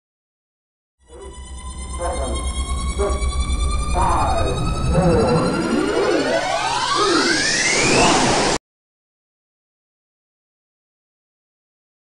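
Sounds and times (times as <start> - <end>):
siren-like electronic tone sweeps: 1.0 - 8.6
low rumble: 1.1 - 7.6.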